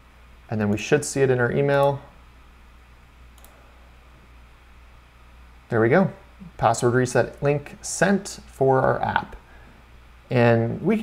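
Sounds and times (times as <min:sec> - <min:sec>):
faint low hum: 0:00.0 - 0:11.0
computer mouse click: 0:03.4 - 0:03.6.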